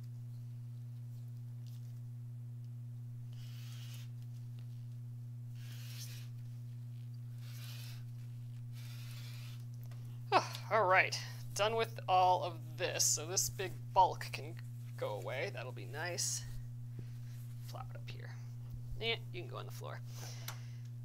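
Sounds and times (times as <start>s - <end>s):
steady low hum: 0.0s - 21.0s
rotary cutter slicing fabric: 3.3s - 4.4s, 5.5s - 6.5s, 7.2s - 9.8s.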